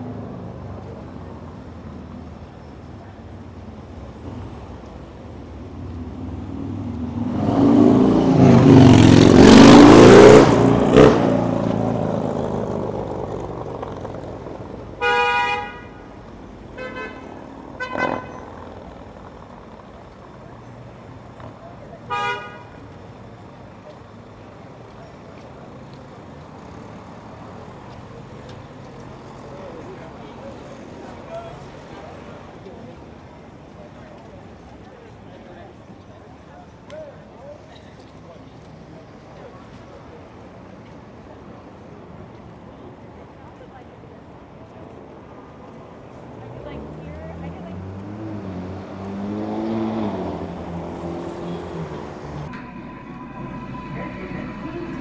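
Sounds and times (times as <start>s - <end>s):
loud motor vehicle passing: 5.6s - 15.0s, 46.7s - 55.0s
car horns honking: 15.0s - 16.1s, 16.8s - 18.6s, 22.1s - 22.8s.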